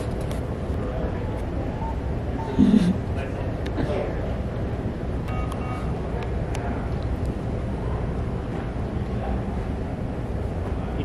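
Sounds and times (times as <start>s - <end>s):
low store room rumble: 0.0s - 11.0s.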